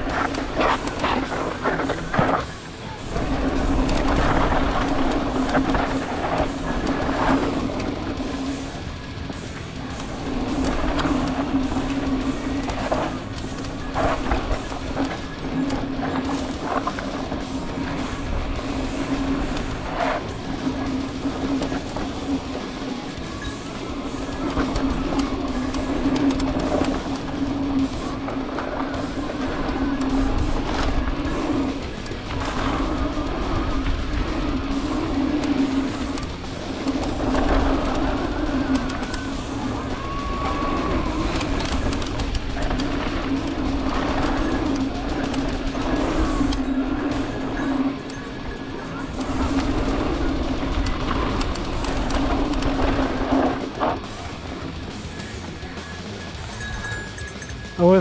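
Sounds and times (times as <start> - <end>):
bike tyres rumbling on dirt trail: 0.0 - 58.0
knocks and rattles over bumps: 0.0 - 58.0
steady hum: 0.0 - 58.0.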